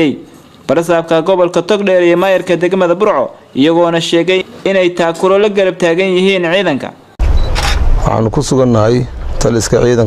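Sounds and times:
man speaking: 0:00.0 - 0:07.0.

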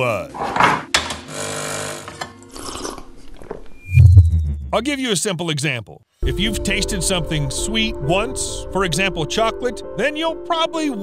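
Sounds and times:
espresso machine humming: 0:01.3 - 0:02.1.

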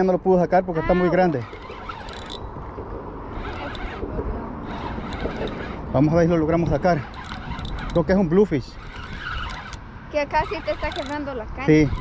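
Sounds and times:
wind rumbling on microphone: 0:00.6 - 0:12.0
fishing reel clicks: 0:01.2 - 0:02.5, 0:03.3 - 0:04.0, 0:04.6 - 0:09.8, 0:10.4 - 0:12.0.

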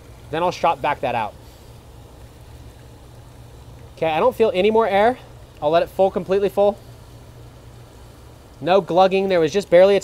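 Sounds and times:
faint hiss: 0:00.0 - 0:10.0
low background hum: 0:00.0 - 0:10.0.

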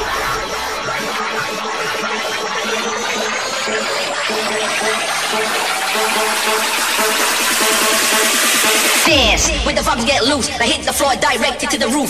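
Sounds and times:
fast pulsing synth: 0:00.0 - 0:12.0
rising noise sweep: 0:01.3 - 0:11.0.

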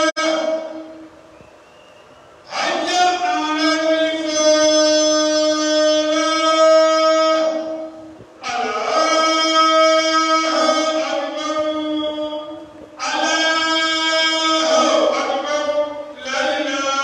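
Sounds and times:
man chanting long held notes: 0:00.0 - 0:01.1, 0:02.5 - 0:17.0.

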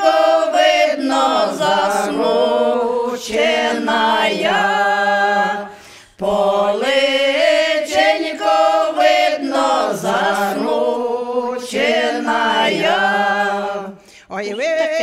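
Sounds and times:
women singing a cappella folk song: 0:00.0 - 0:14.2.

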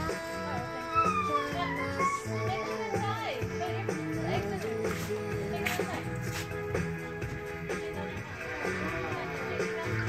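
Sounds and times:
music playing on a radio: 0:00.0 - 0:10.0.

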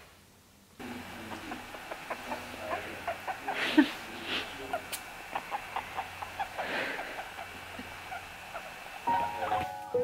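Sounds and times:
breathy rustle: 0:02.6 - 0:04.7, 0:06.5 - 0:07.4
guinea pig squeaking: 0:08.1 - 0:09.7.

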